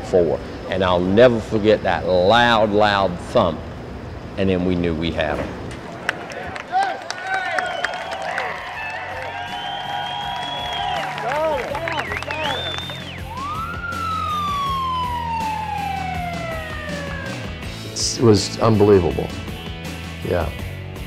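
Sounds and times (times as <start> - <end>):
sirens wailing: 7.6 - 18.6.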